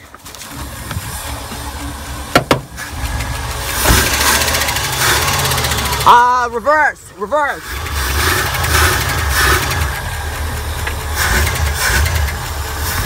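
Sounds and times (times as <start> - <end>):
engine idling low rumble: 0.0 - 13.0.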